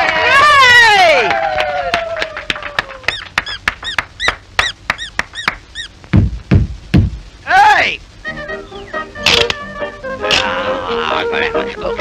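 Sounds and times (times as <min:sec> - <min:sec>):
squeaky cartoon notes: 0:03.1 - 0:06.0
heavy thumps: 0:04.6 - 0:07.4.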